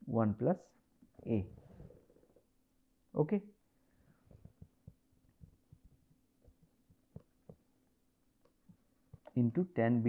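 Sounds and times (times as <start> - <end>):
stylus tapping on tablet: 4.3 - 7.7.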